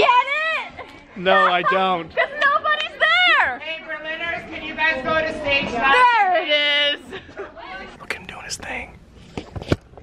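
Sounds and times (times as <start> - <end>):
person whispering: 8.0 - 9.0.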